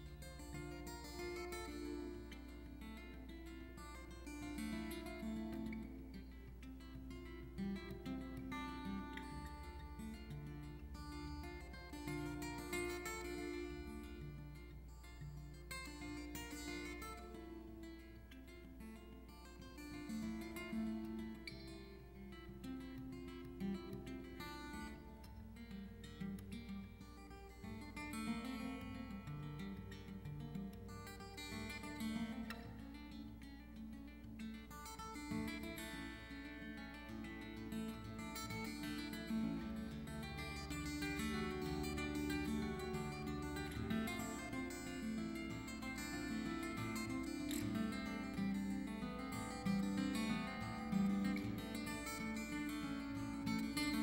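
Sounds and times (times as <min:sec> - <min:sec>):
fingerstyle acoustic guitar: 0:00.0 - 0:54.0.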